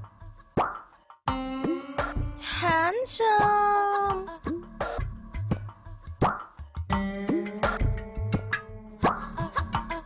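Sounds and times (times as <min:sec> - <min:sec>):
comic plucked music: 0:00.0 - 0:03.0, 0:04.2 - 0:10.0.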